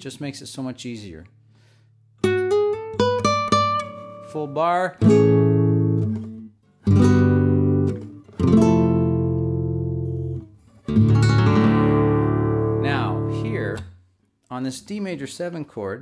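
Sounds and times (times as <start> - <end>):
guitar chords ringing: 2.2 - 14.0.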